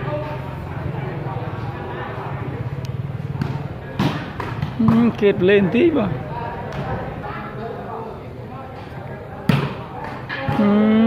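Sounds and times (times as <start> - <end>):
spectators chattering: 0.0 - 11.0
hand slapping volleyball: 3.4 - 5.2, 9.5 - 11.0.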